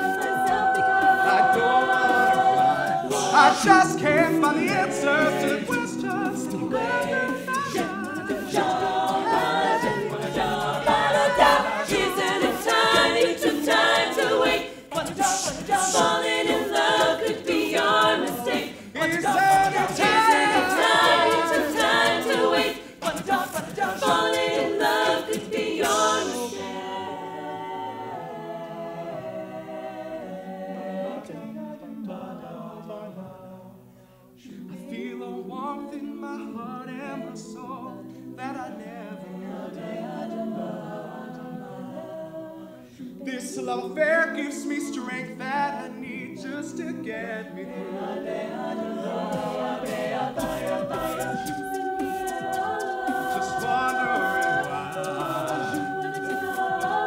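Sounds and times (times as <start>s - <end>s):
percussive beat: 0.0s - 26.6s, 49.2s - 57.0s
a cappella group singing: 0.0s - 57.0s.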